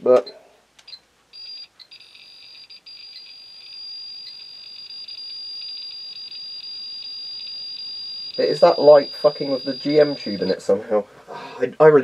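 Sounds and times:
geiger counter beeping alarm: 0:01.3 - 0:10.6.

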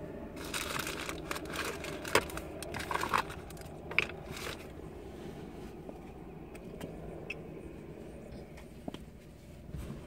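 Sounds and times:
low vehicle rumble: 0:00.0 - 0:10.0.

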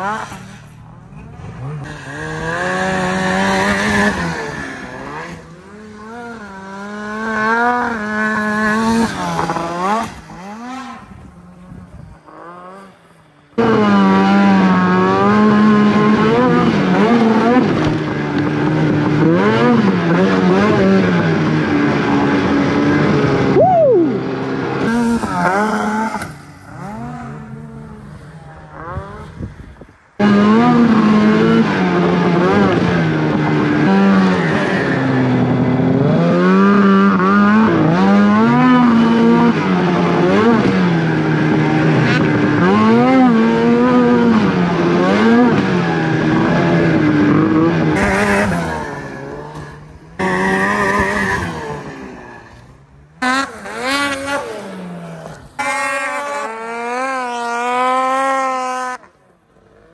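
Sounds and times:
snowmobile engines revving: 0:00.0 - 0:59.9.

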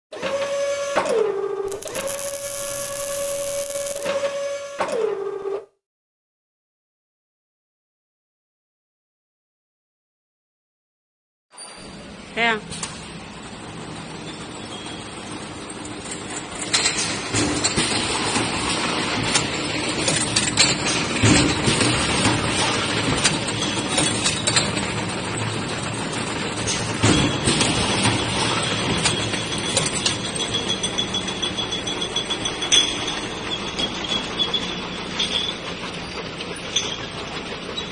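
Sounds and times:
hissing whir: 0:01.7 - 0:04.1
servo motor whine: 0:01.7 - 0:04.1
sharp clicks: 0:01.7 - 0:04.1.

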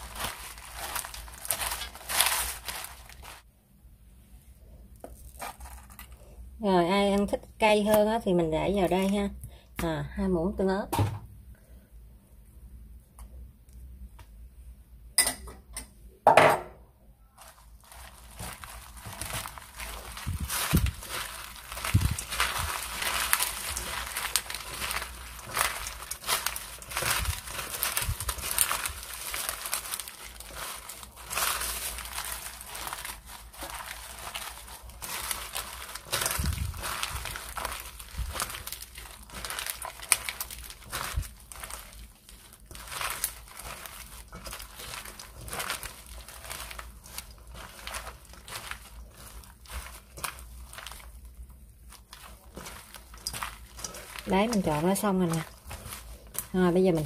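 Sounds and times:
rice paper strips crinkling: 0:00.0 - 0:03.5, 0:05.0 - 0:09.4, 0:17.4 - 0:57.0.

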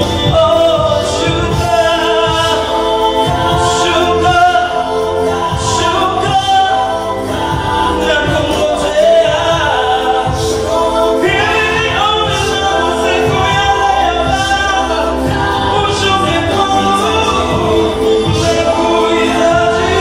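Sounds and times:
man singing into a microphone: 0:00.0 - 0:20.0.

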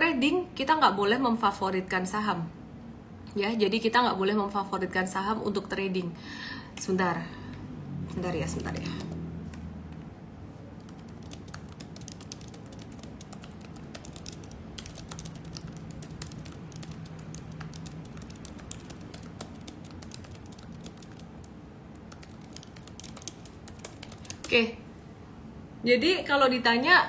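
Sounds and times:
low room hum: 0:00.0 - 0:27.0.

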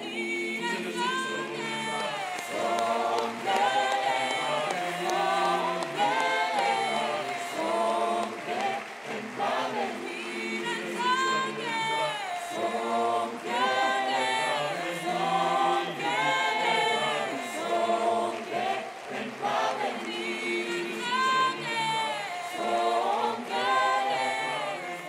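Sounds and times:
a cappella choir singing: 0:00.0 - 0:25.0.

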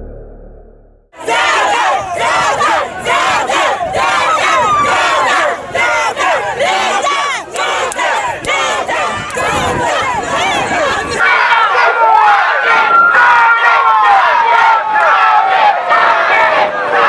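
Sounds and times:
crowd shouting and cheering: 0:01.2 - 0:17.0.

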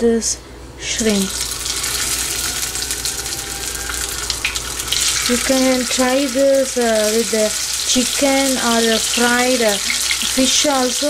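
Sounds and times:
shrimp sizzling in hot oil: 0:01.1 - 0:11.0.

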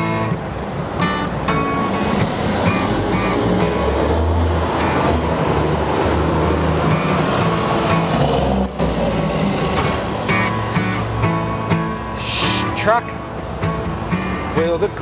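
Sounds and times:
city street traffic: 0:00.0 - 0:15.0
strummed acoustic guitar music: 0:00.0 - 0:15.0.

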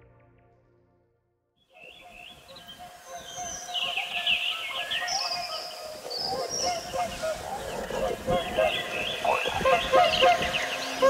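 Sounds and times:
birds chirping and whistling: 0:01.7 - 0:11.0.

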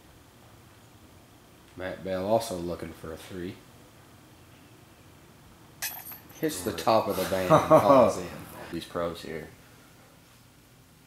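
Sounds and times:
faint background hiss: 0:00.0 - 0:11.0
disc striking metal chain basket: 0:05.8 - 0:06.7.

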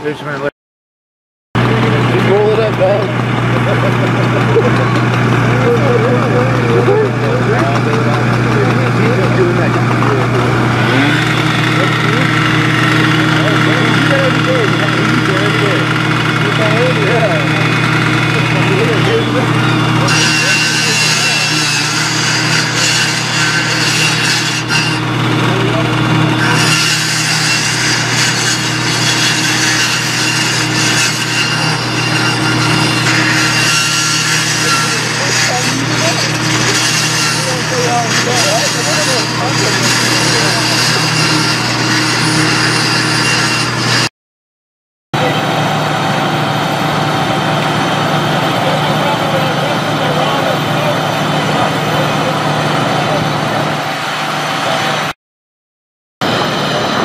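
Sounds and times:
truck engine running: 0:01.6 - 0:24.1, 0:25.0 - 0:26.6, 0:45.2 - 0:55.1
power saw cutting steel: 0:01.6 - 0:44.1, 0:45.2 - 0:55.2.

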